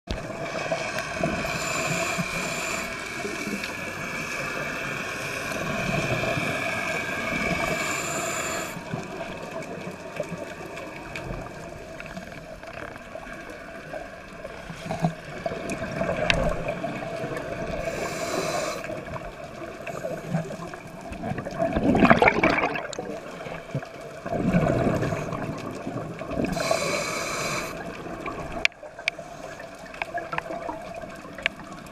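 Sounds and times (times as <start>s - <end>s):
regulator hiss: 1.4s - 8.9s, 17.8s - 19.0s, 26.5s - 27.8s
exhaled bubbles gushing: 14.5s - 17.9s, 18.9s - 26.8s.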